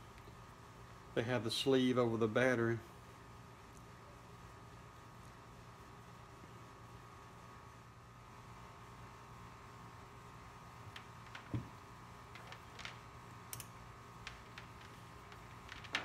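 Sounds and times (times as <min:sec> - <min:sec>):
faint steady hum: 0:00.0 - 0:16.0
test leads clicking and knocking: 0:10.9 - 0:16.0.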